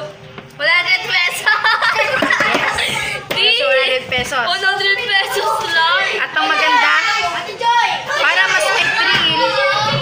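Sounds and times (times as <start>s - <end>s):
young woman talking animatedly: 3.0s - 9.7s.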